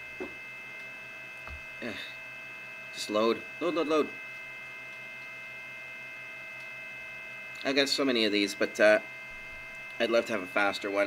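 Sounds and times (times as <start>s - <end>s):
electrical hum: 0.0s - 11.0s
high whining tones: 0.0s - 11.0s.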